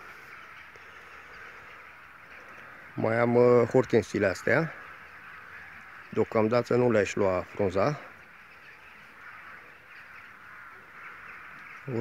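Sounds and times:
distant birds chattering: 0.0 - 12.0.

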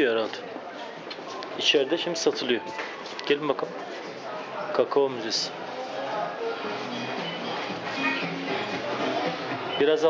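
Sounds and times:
people's voices: 0.0 - 10.0
background music: 6.3 - 10.0.

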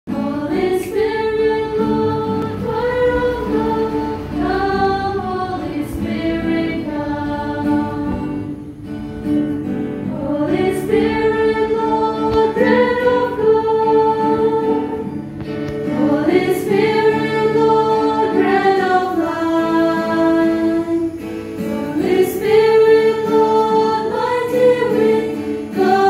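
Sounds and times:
choir singing a hymn: 0.1 - 26.0.

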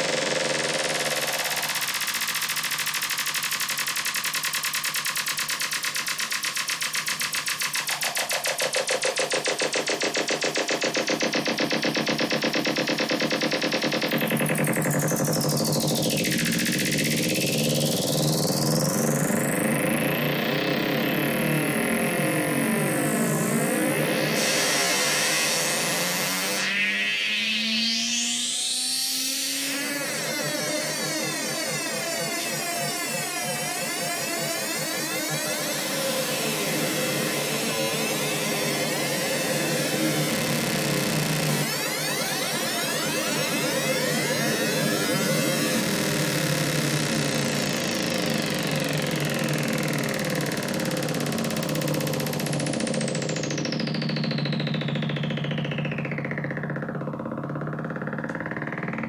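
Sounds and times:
buzzy synthesizer tone: 0.0 - 59.0
gliding synthesizer pitch lines: 0.0 - 59.0.

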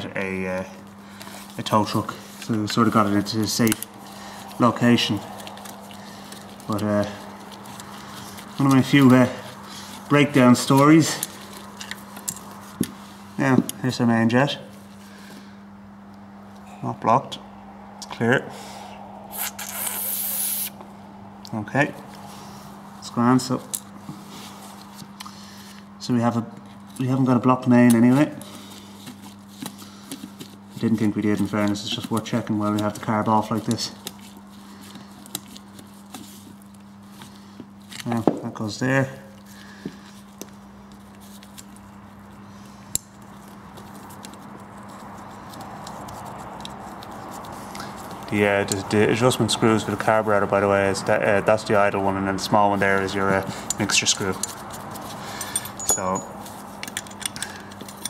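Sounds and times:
faint steady hum: 0.0 - 58.0
pressurised spray hissing: 19.3 - 20.8
light clicks of metal parts: 45.5 - 49.0, 53.0 - 58.0.

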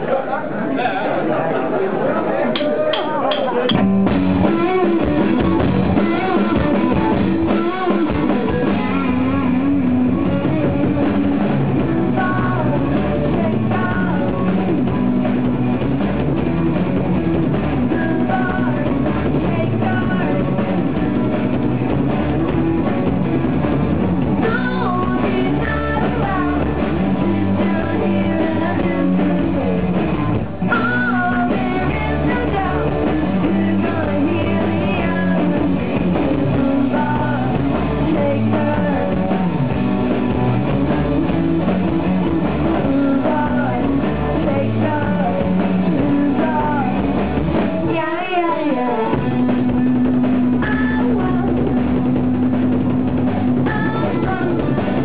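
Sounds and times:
rock band playing: 3.4 - 55.0.

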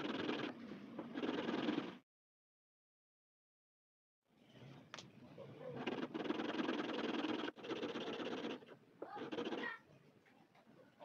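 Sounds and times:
file rasping on fret wire: 5.8 - 9.8.

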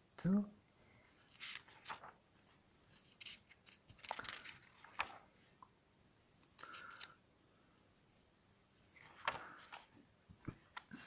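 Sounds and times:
paper pages rustling: 1.2 - 5.7, 6.4 - 7.2, 8.8 - 11.0.

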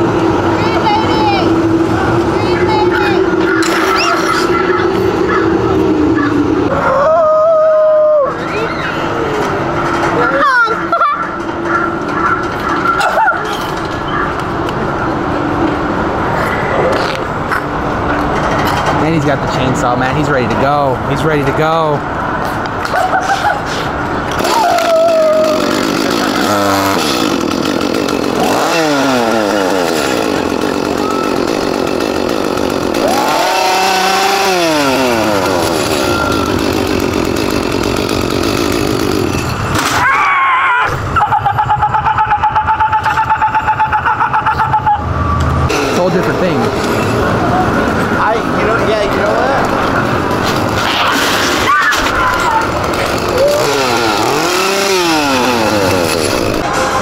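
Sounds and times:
chainsaw revving: 0.0 - 6.7, 24.2 - 40.0, 45.7 - 47.3, 48.6 - 56.7.

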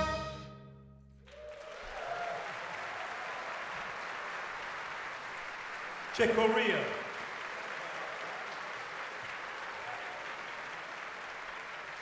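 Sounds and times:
audience applauding: 1.2 - 12.0.

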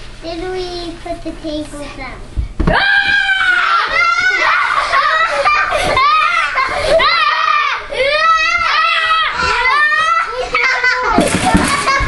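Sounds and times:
children calling out and squealing: 2.7 - 12.0.

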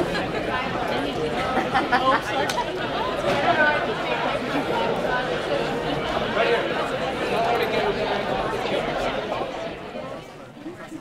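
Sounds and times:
babble of overlapping conversations: 0.0 - 11.0.

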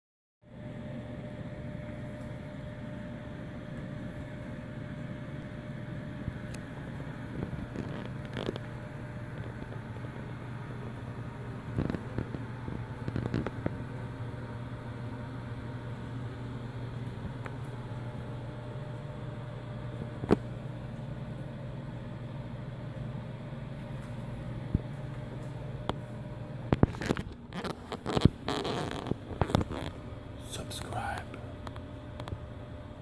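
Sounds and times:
low room rumble: 0.5 - 33.0
thin steady hum: 0.5 - 33.0.

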